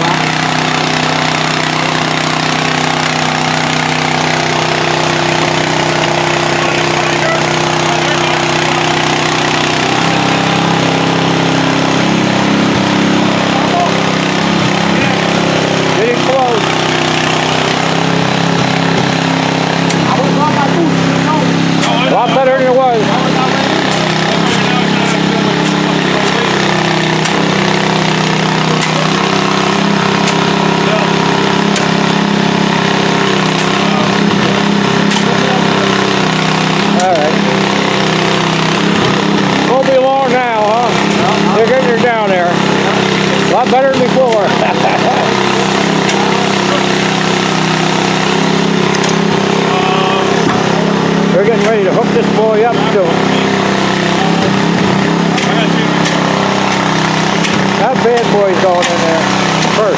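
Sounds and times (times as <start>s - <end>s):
large engine droning: 0.0s - 59.9s
people talking indistinctly: 0.0s - 59.9s.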